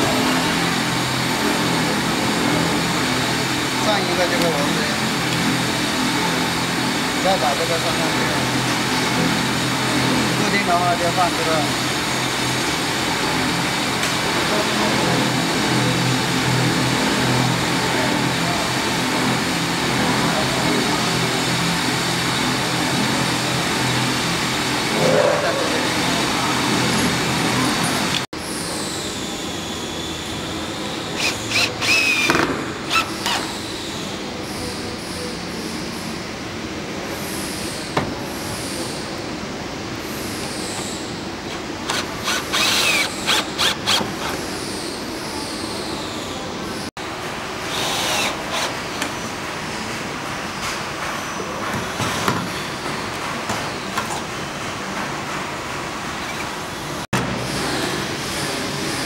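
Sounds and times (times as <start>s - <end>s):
workshop background noise: 0.0s - 59.0s
cordless drill driving screws: 31.2s - 33.5s, 41.8s - 44.4s, 47.7s - 48.8s.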